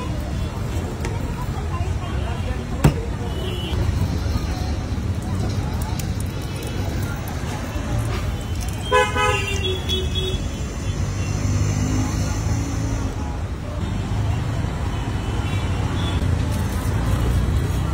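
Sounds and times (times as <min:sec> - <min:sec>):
street traffic rumble: 0:00.0 - 0:17.9.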